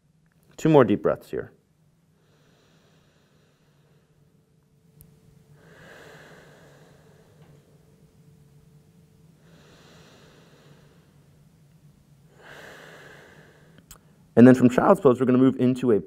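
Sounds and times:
man breathing through the nose: 2.2 - 4.3, 5.6 - 7.6, 9.4 - 11.3, 12.3 - 14.2.

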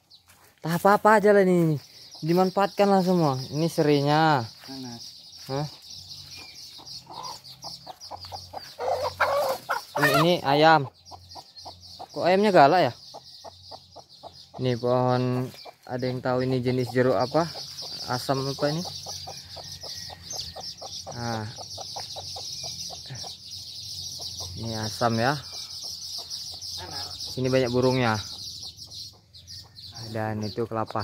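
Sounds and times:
falling bird chirp: 0.0 - 31.0
chicken clucking: 1.1 - 29.8.

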